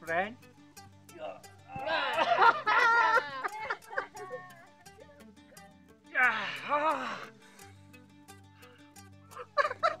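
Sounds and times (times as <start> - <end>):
soft background music: 0.0 - 10.0
man laughing loudly: 1.8 - 4.5, 9.3 - 10.0.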